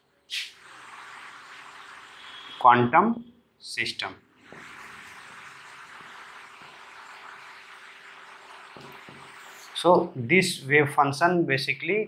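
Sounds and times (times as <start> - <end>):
even hiss: 0.3 - 2.9.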